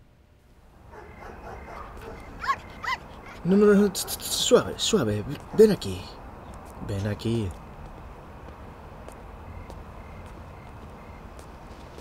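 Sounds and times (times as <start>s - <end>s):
dog yipping: 0.9s - 3.4s.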